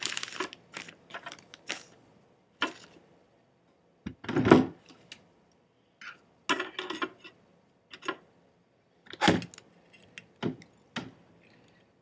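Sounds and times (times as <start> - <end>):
scratchy rustling and crunching: 0.0 - 1.9.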